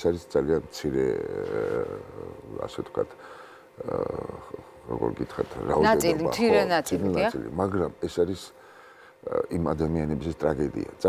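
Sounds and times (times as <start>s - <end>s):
person talking: 5.4s - 7.5s.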